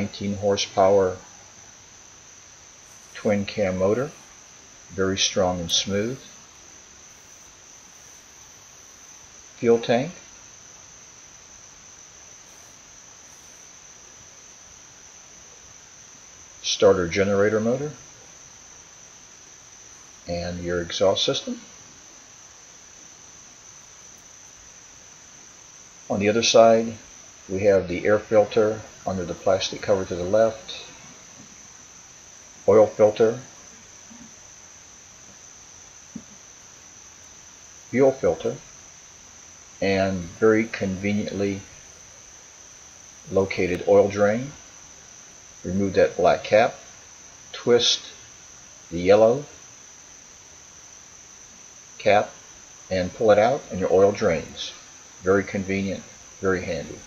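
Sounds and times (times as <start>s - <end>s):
crickets trilling: 0.0s - 57.0s
insects chirring: 0.0s - 57.0s
low background hiss: 0.0s - 57.0s.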